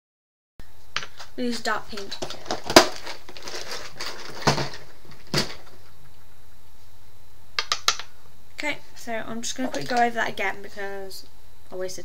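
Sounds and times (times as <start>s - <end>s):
small containers knocking and clinking: 1.9s - 5.7s.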